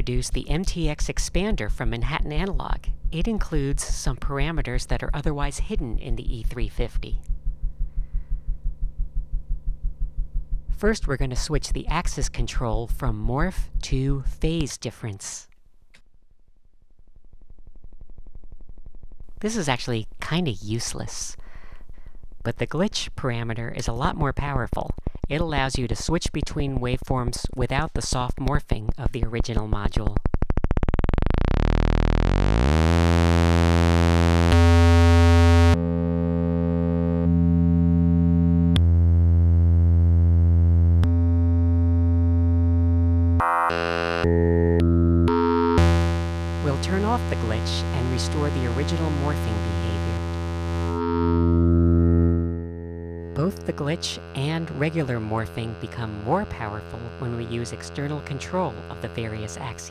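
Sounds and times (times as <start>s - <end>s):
synthesizer oscillator drone: 30.5s - 59.9s.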